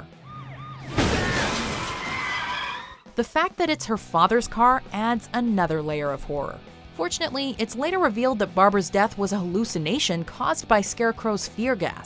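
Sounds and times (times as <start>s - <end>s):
music: 0.0s - 1.4s, 2.8s - 12.0s
loud crash: 0.9s - 2.9s
smashing and rattling: 1.0s - 2.6s.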